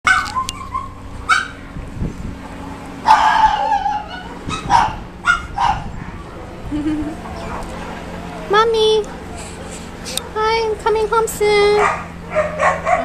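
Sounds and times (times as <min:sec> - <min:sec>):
dog whining: 0:00.1 - 0:01.6, 0:03.1 - 0:06.3
small dog yipping: 0:00.1 - 0:01.6, 0:03.1 - 0:05.9, 0:11.8 - 0:13.0.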